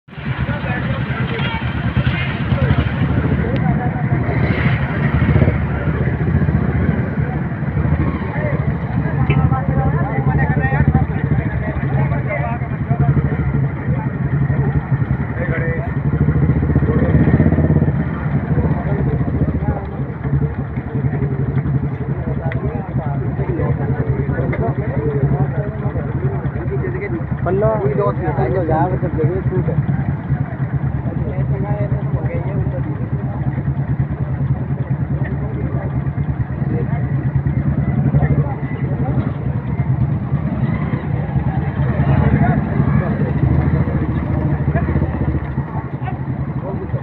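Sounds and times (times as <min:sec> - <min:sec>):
vehicle engines running: 0:00.0 - 0:47.0.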